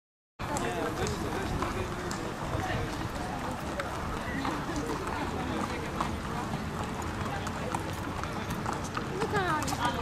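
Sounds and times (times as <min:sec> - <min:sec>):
background chatter of voices: 0:00.4 - 0:10.0.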